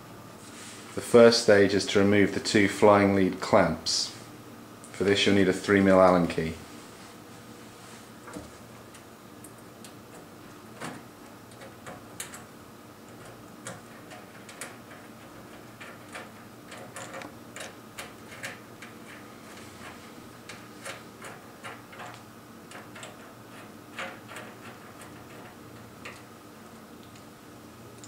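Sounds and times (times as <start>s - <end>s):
faint steady hum: 0.0s - 28.0s
allen key clicking on screws: 8.9s - 12.5s, 13.1s - 19.2s, 20.5s - 26.3s.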